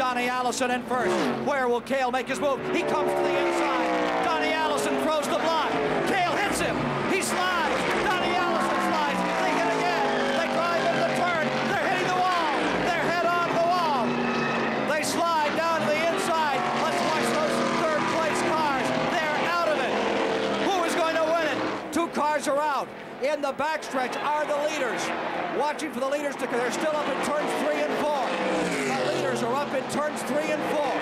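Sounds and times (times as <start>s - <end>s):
race car engines passing by: 0.0s - 31.0s
crowd shouting and cheering: 2.3s - 31.0s.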